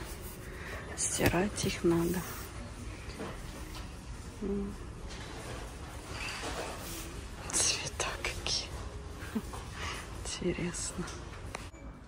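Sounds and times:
woman whispering: 4.3 - 4.9, 7.4 - 9.0, 10.0 - 11.4.

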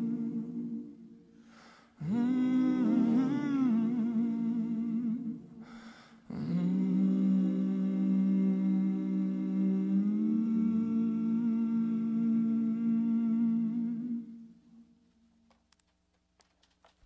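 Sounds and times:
voices humming a chord: 0.0 - 1.0, 2.0 - 5.5.

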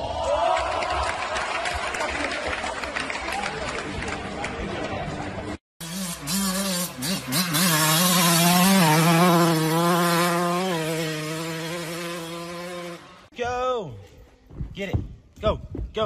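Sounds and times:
dirt bike engine revving: 5.8 - 13.3.

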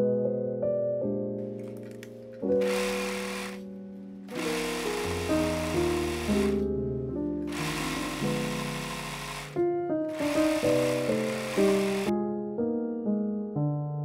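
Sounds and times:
soft piano music: 0.0 - 14.0
serger sewing machine stitching: 2.5 - 3.6, 4.3 - 6.6, 7.5 - 12.1.

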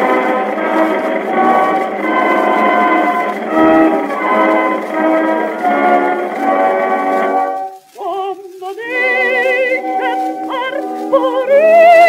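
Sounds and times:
muffled orchestral music: 0.0 - 12.0.

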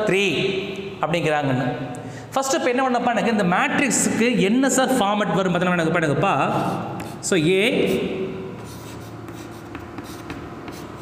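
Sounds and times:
chalk scratching on chalkboard: 6.5 - 11.0.

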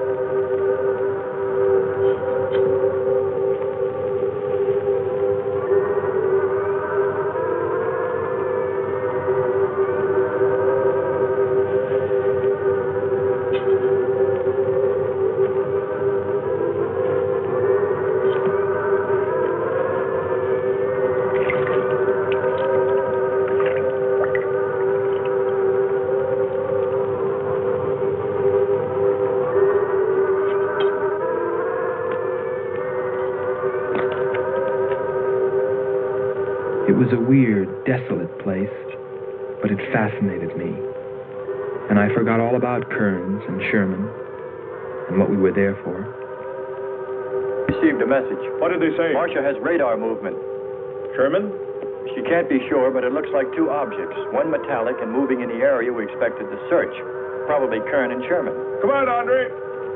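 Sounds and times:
gliding wavering electronic tones: 0.0 - 59.9
low electronic drone: 0.0 - 59.9.

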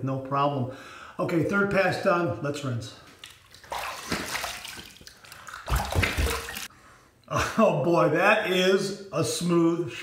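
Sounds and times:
water splashing on face: 3.2 - 6.7.

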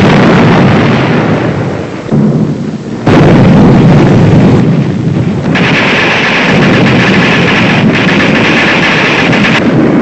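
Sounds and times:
rumble of explosions and gunfire: 0.0 - 10.0.

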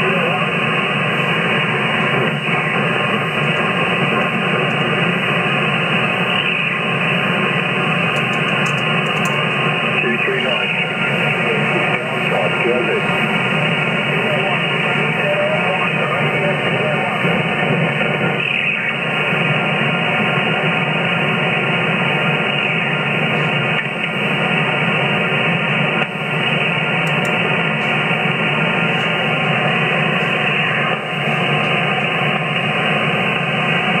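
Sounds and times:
faint garbled radio voices: 0.0 - 34.0
muffled radio static hiss: 0.0 - 34.0.

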